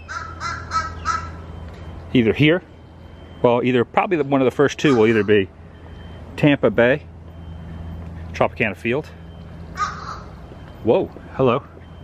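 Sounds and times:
bird calling: 0.0 - 2.1, 4.2 - 6.2, 9.1 - 12.0.

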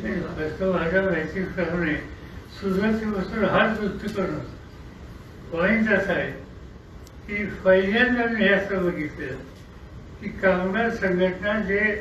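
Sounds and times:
man speaking into a microphone: 0.0 - 4.7, 5.4 - 6.6, 7.2 - 12.0.

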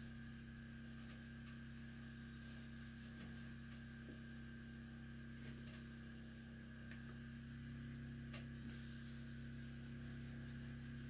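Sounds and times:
background hum: 0.0 - 11.0
hands rubbing wood stove: 0.7 - 4.5, 8.8 - 11.0.

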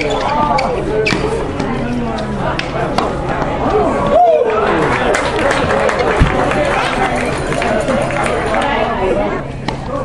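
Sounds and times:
people talking: 0.0 - 10.0.

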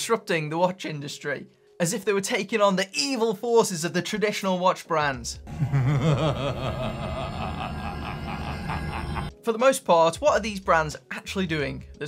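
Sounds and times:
man laughing: 5.5 - 9.3.

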